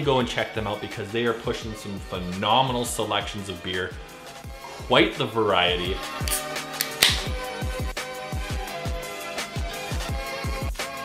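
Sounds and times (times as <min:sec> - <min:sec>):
hip-hop music with kick drum: 0:05.7 - 0:11.0
beer can opening hiss: 0:06.2 - 0:07.4.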